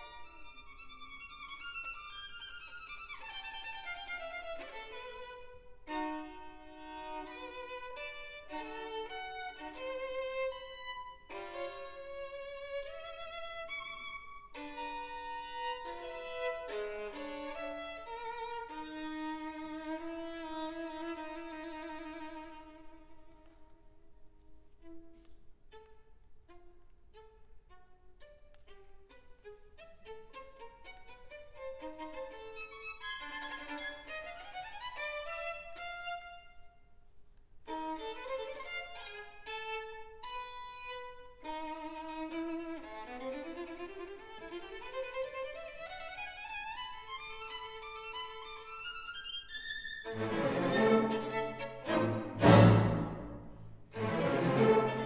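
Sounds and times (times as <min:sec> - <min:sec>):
solo violin playing: 0:00.0 - 0:36.9, 0:37.6 - 0:55.0.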